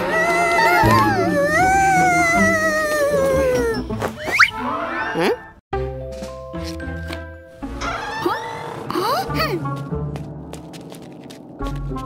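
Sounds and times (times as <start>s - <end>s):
cartoon ghost wailing: 0.0s - 3.8s
background music: 0.0s - 12.0s.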